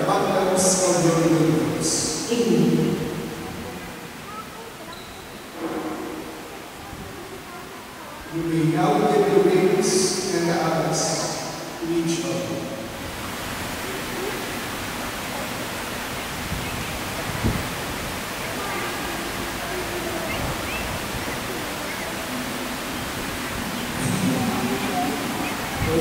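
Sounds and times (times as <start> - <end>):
faint indistinct voices: 0.0 - 26.0
rushing hiss: 0.0 - 26.0
knock: 5.6 - 6.3.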